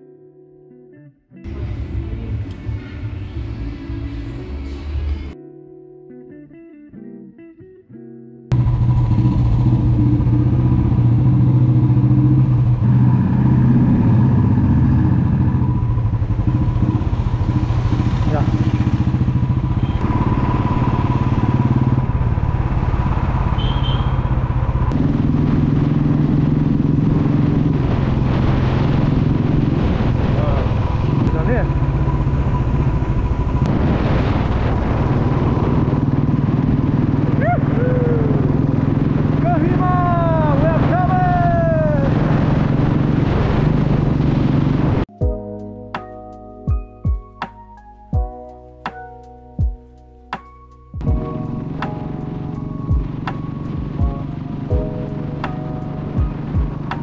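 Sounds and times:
motorcycle engine running: 8.5 - 45.1, 51.0 - 57.0.

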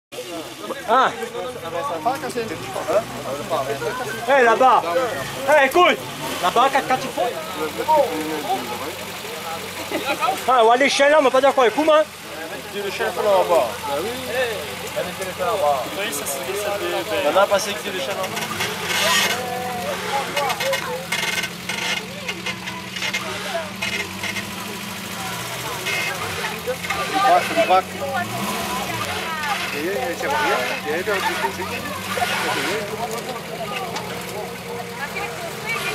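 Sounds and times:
car engine idling: 0.1 - 35.9
chatter of voices: 0.1 - 35.9
people talking and calling: 0.1 - 35.9.

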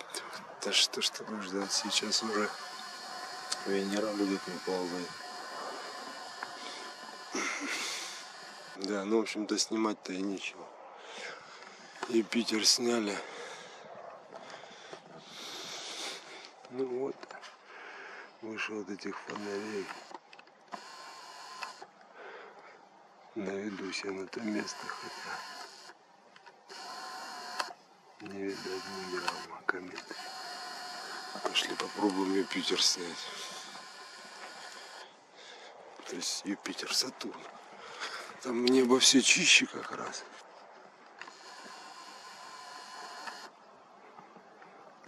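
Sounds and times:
faint background noise: 0.0 - 45.0
lens zoom motor whirring: 0.6 - 9.1, 19.2 - 22.0, 24.4 - 35.2, 41.1 - 43.6.

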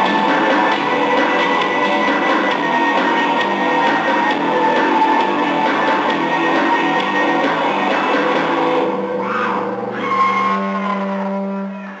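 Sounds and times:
bass guitar: 0.0 - 12.0.

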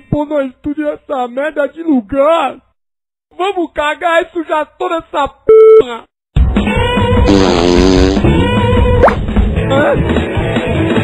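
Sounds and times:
sharp cartoon pop: 9.0 - 9.2.

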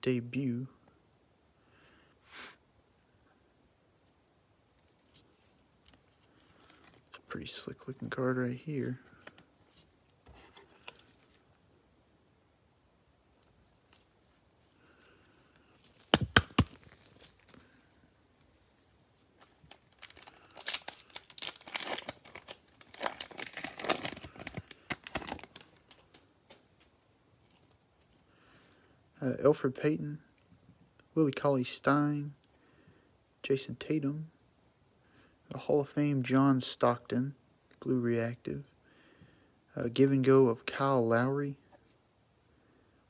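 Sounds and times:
foil wrapper ripping and rustling: 19.4 - 26.0.

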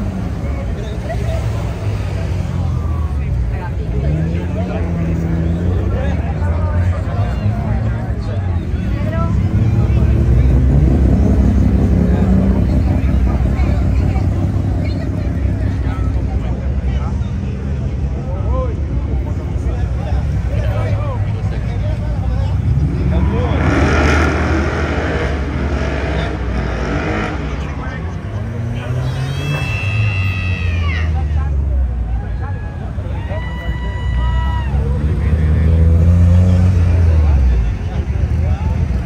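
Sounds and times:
cars driving past: 0.0 - 39.0
crowd chatter: 0.0 - 39.0
car engine revving and accelerating: 8.9 - 16.6, 20.2 - 30.1, 34.7 - 39.0.

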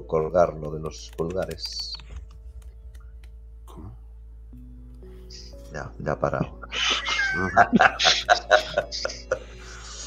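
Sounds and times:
quiet background music: 0.0 - 10.0
people laughing: 6.3 - 10.0.

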